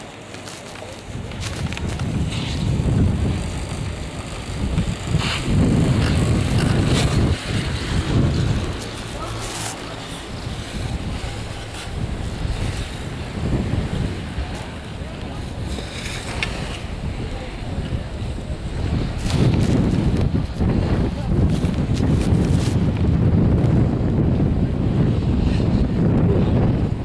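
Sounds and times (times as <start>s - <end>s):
wind buffeting microphone: 0.0s - 27.0s.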